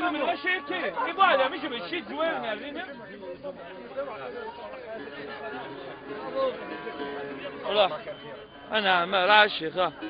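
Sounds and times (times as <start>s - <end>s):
background chatter of people: 0.0s - 10.0s.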